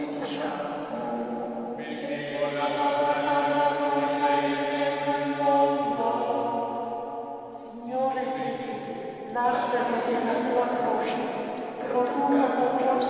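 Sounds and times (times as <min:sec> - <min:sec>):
slow hymn singing: 0:00.0 - 0:13.0.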